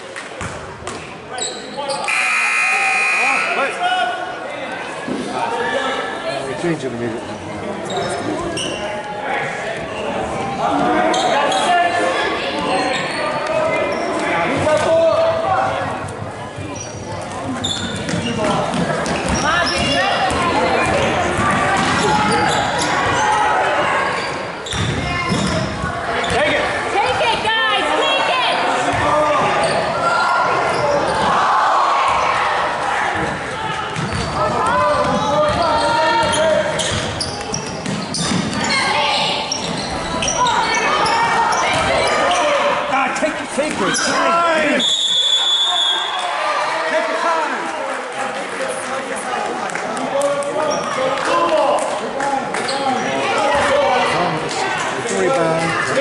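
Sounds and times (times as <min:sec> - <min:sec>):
voices of spectators and players: 0:00.0 - 0:56.0
sneakers squeaking on floor: 0:01.3 - 0:03.6, 0:07.3 - 0:09.0, 0:11.0 - 0:11.8, 0:12.5 - 0:14.8, 0:16.5 - 0:23.4, 0:24.1 - 0:26.5, 0:28.9 - 0:30.0, 0:30.6 - 0:31.3, 0:33.9 - 0:42.6
referee's whistle blast: 0:02.0 - 0:03.7, 0:44.8 - 0:46.2
basketball bouncing on hardwood: 0:34.0 - 0:34.3.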